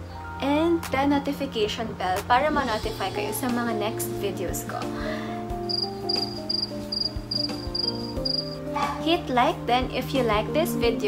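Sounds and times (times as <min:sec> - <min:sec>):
soft background music: 0:00.0 - 0:11.0
cricket chirping: 0:05.7 - 0:08.6.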